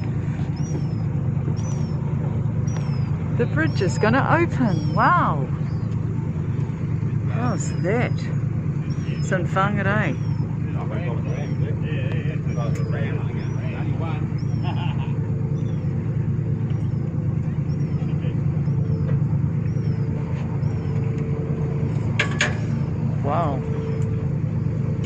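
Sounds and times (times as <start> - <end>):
boat engine running: 0.0 - 25.0
voices: 1.5 - 21.9, 23.0 - 25.0
faint high chirp: 16.6 - 21.1.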